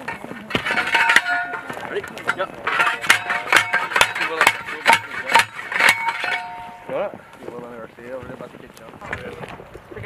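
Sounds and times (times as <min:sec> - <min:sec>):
metal tubes clinking and ringing: 0:00.0 - 0:07.1
men talking: 0:01.5 - 0:10.0.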